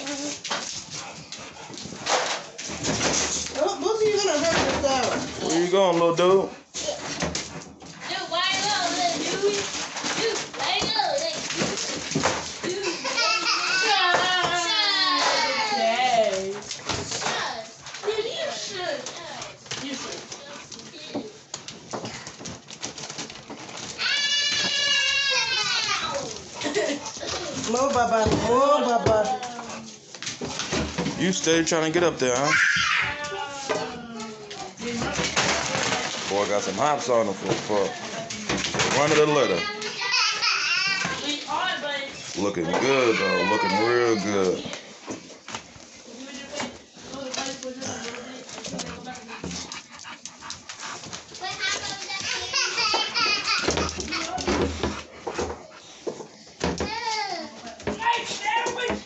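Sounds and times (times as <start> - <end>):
dogs scuffling on vinyl floor: 0.0 - 59.0
dog claws clicking on tile: 46.5 - 57.1.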